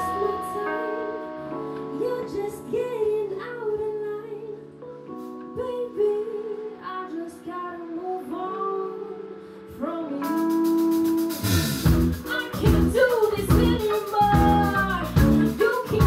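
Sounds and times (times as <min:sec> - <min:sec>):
woman singing: 0:00.0 - 0:11.3, 0:12.2 - 0:16.0
band playing held chords: 0:10.9 - 0:16.0.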